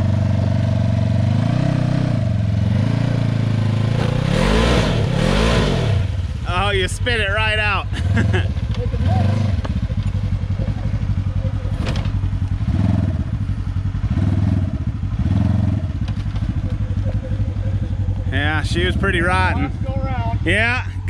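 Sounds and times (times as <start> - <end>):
utility vehicle engine revving: 0.0 - 21.0.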